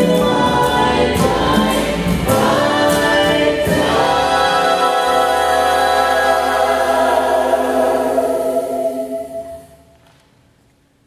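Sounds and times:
vocal ensemble holding harmony chord: 0.0s - 9.9s.

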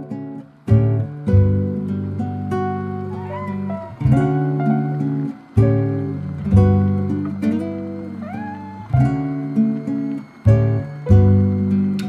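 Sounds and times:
slow acoustic guitar music: 0.0s - 12.0s
brief rising gliding note: 8.0s - 10.4s.

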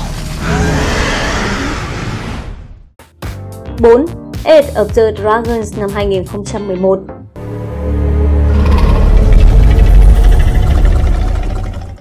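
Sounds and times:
deep rumble: 8.0s - 12.0s.

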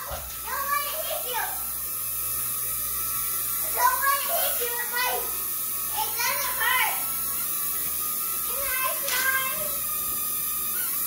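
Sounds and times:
toy drone propellers whirring: 0.0s - 11.0s.

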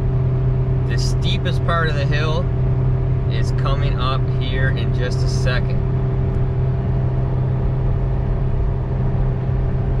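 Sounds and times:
engine droning under load: 0.0s - 10.0s
road noise: 0.0s - 10.0s.

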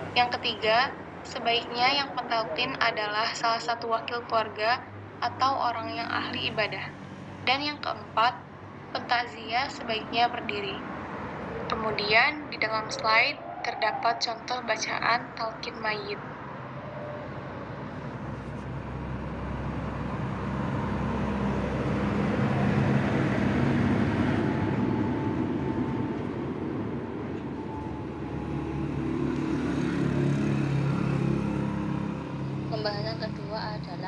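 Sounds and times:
road traffic passing: 0.0s - 34.0s.

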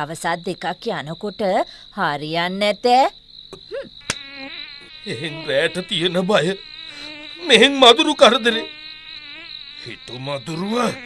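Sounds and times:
night insects high-pitched tone: 0.0s - 11.0s.

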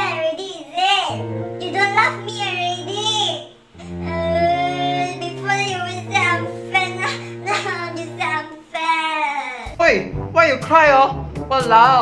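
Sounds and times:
background music with low notes: 0.0s - 0.5s, 1.1s - 12.0s.

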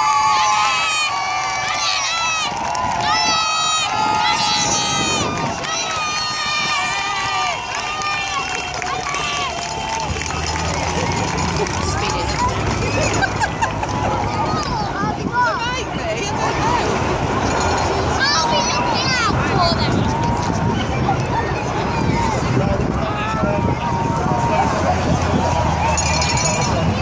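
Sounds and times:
crowd shouting: 0.0s - 27.0s
passing car engines: 0.0s - 27.0s.

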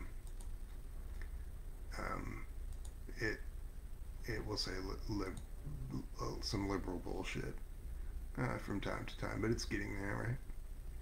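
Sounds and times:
steady low hum: 0.0s - 11.0s
computer keyboard clicks: 0.2s - 0.6s.

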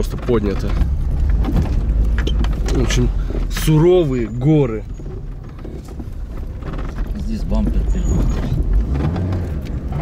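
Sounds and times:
car engine and cabin rumble: 0.0s - 10.0s.

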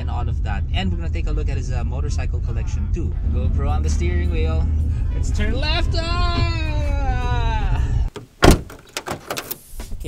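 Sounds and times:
car door shutting: 8.1s - 10.0s.

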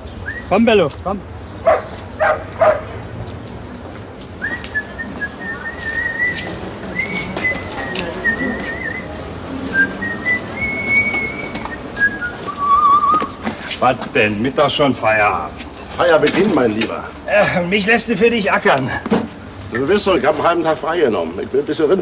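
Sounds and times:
person whistling a tune: 4.4s - 13.4s.

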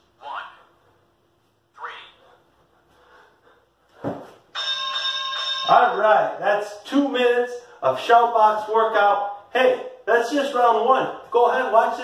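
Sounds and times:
man breathing hard: 2.2s - 4.1s.

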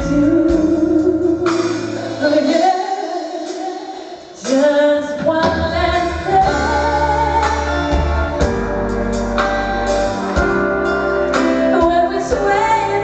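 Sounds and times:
woman singing pop ballad: 0.0s - 8.5s, 11.3s - 13.0s
live band playing: 0.0s - 13.0s.

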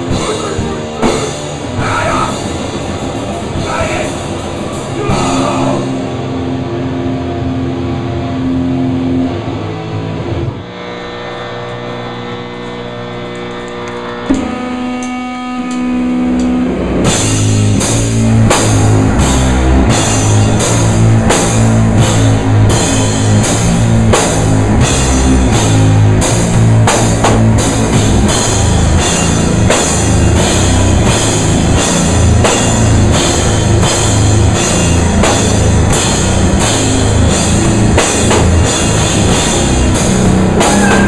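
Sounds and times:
drum kit hits: 0.0s - 6.2s, 17.0s - 41.0s
electric guitar and bass chords: 0.0s - 41.0s.

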